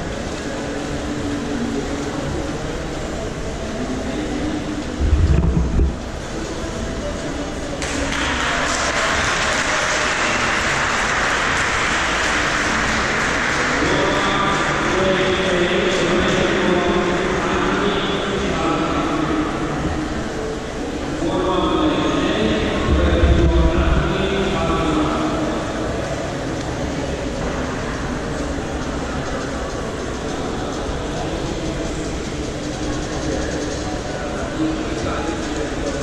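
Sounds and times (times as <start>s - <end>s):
distant voices: 0.0s - 36.0s
steady noisy wash: 0.0s - 36.0s
brief low rumble: 5.0s - 6.1s.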